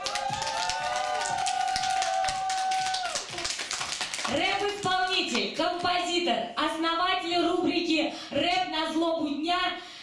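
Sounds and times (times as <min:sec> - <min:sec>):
audience clapping: 0:00.0 - 0:05.7.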